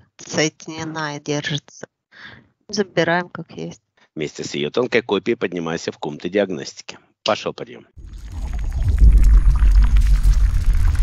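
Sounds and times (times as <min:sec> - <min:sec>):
deep loud rumble: 0:08.0 - 0:11.0.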